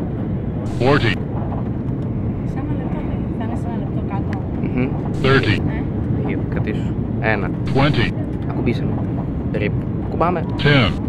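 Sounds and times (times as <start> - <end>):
aircraft cabin engine and airflow noise: 0.0 - 11.0
faint voices: 0.7 - 1.2, 2.5 - 9.0, 9.6 - 11.0.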